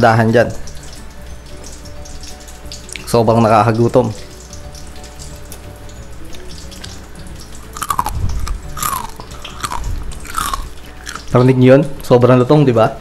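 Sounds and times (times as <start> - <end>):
faint background music: 0.0 - 13.0
crunching bites of fried chicken: 7.6 - 11.4.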